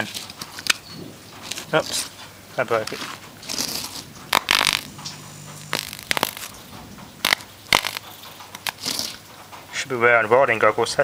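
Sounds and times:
electric arc snapping and crackling: 0.0 - 9.7
hissing burst: 3.4 - 9.2.

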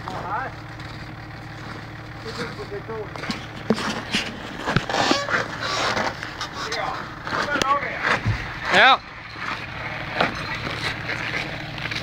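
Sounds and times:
diesel engine running: 0.0 - 12.0.

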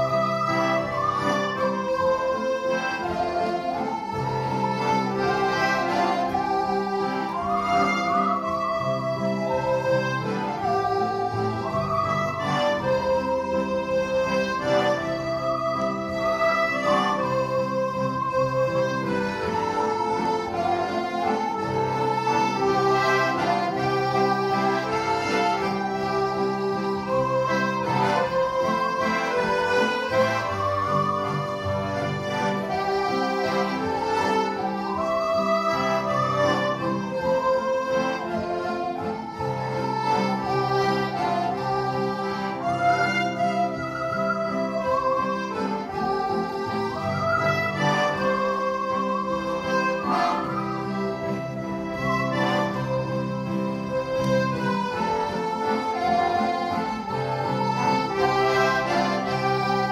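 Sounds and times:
button accordion chords: 0.0 - 59.9
musical saw melody: 0.0 - 59.9.

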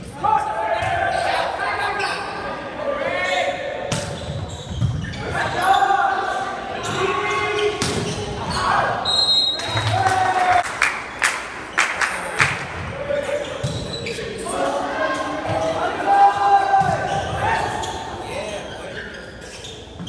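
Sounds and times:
people shouting: 14.4 - 17.9.

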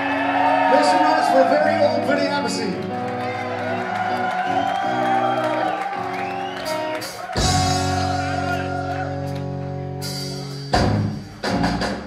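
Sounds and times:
crowd whooping: 0.0 - 2.2, 2.9 - 9.6.

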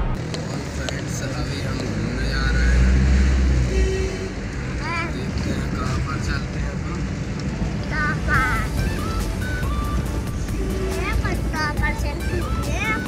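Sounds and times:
engine and road rumble: 0.0 - 13.0
voices: 0.2 - 13.0.

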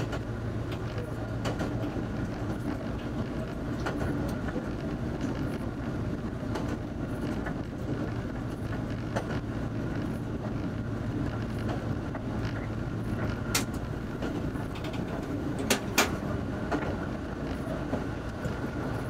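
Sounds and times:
railcar engine and wheels rumbling: 0.0 - 19.0.

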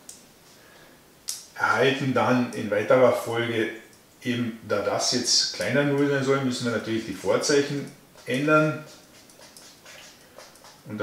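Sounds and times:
chalk scratching on blackboard: 7.0 - 10.9.

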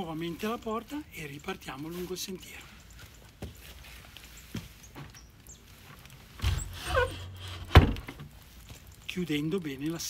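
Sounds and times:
wooden door banging shut: 6.4 - 8.3.

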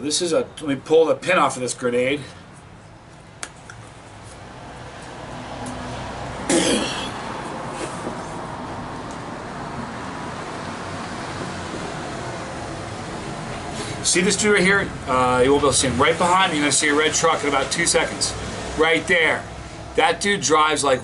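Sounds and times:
passing traffic road noise: 0.0 - 21.0
person coughing: 6.5 - 7.2.

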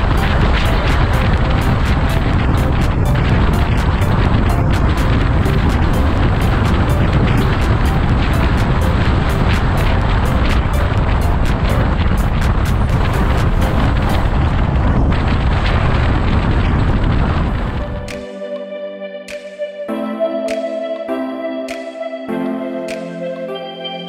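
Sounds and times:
background music: 0.0 - 14.7, 17.6 - 24.0
wind rushing: 0.0 - 18.4.

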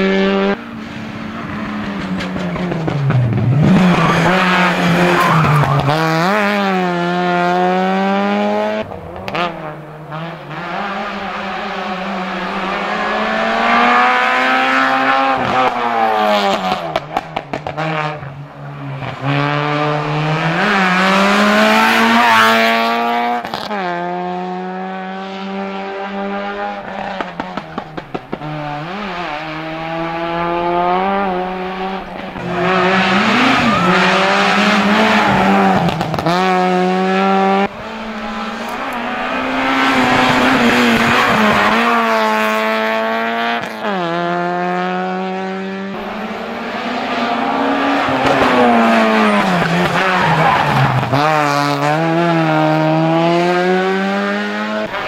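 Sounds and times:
rally car engine revving: 0.0 - 55.0.

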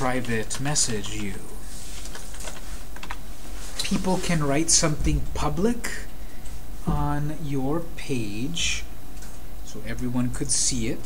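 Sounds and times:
computer keyboard typing: 0.0 - 3.2
low steady hum: 0.0 - 11.0.

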